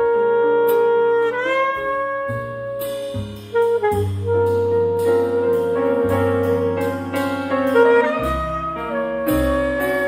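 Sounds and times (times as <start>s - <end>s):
piano chords: 0.0s - 10.0s
saxophone playing: 0.0s - 10.0s
upright bass notes: 0.0s - 10.0s.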